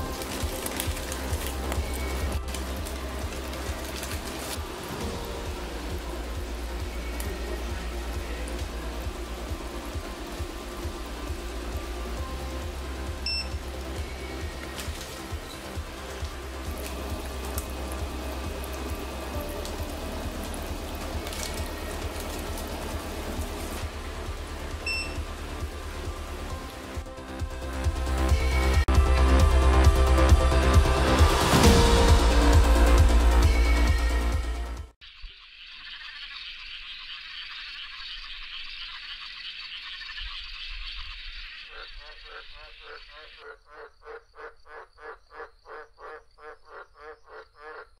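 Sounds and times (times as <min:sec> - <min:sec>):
water sloshing and trickling: 0:00.0 - 0:27.0
low regular throb: 0:00.0 - 0:35.0
short electronic beep: 0:13.2 - 0:13.6, 0:24.9 - 0:25.2
croaking animal calls: 0:35.0 - 0:48.0.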